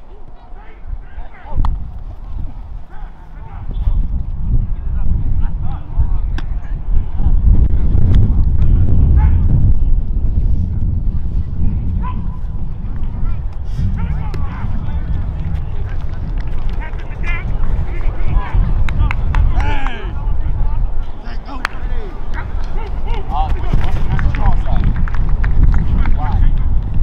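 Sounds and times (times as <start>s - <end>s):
low rumble on microphone: 0.0s - 27.0s.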